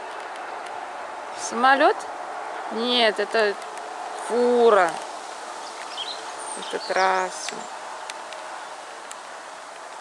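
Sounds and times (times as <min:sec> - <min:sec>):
leaves rustling in wind: 0:00.0 - 0:10.0
lorry on distant highway: 0:00.0 - 0:10.0.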